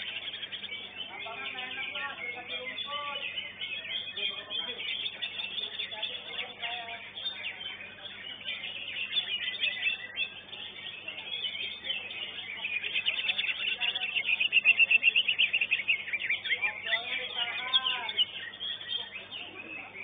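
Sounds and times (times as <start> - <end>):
bird singing high chirps and whistles: 0.0 - 20.0
other birds singing: 0.0 - 20.0.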